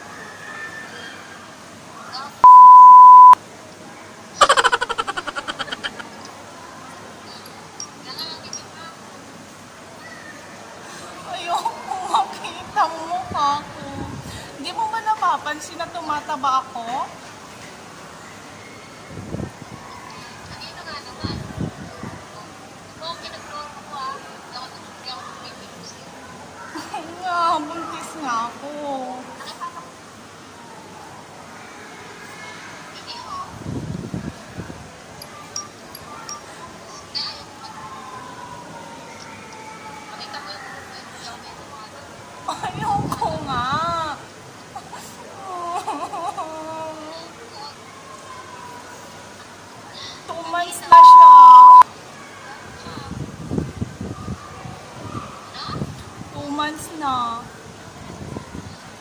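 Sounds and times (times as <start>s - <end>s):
loud high beep: 2.4s - 3.4s, 50.9s - 51.8s.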